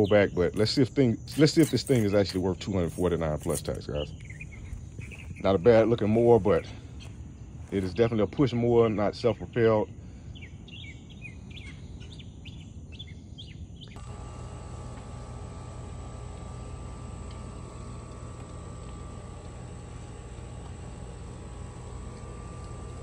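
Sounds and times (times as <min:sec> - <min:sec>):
lawn mower engine starting and running: 0:00.0 - 0:08.1, 0:14.0 - 0:23.0
birds chirping: 0:00.0 - 0:23.0.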